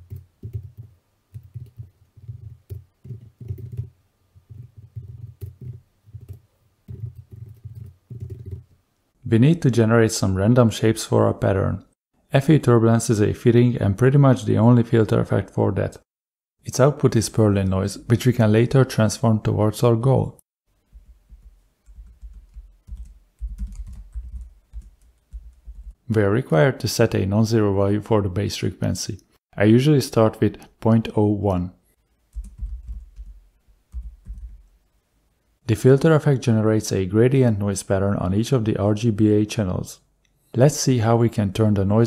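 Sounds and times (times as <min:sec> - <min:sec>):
computer keyboard typing: 0:00.0 - 0:08.6, 0:21.0 - 0:26.0, 0:32.3 - 0:34.6.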